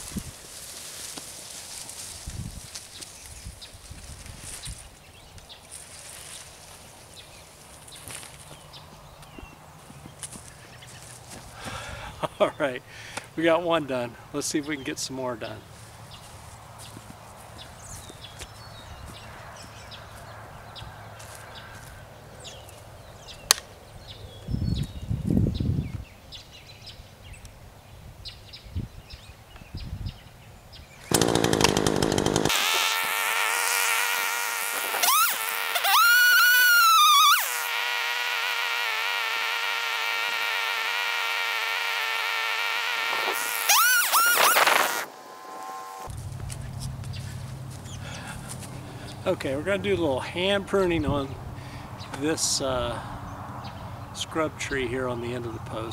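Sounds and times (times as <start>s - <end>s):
faint outdoor background: 0.0s - 55.9s
chainsaw cutting: 31.0s - 46.1s.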